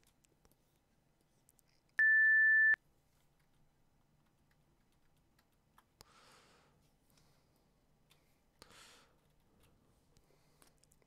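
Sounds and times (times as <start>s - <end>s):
electronic beep: 2.0s - 2.8s.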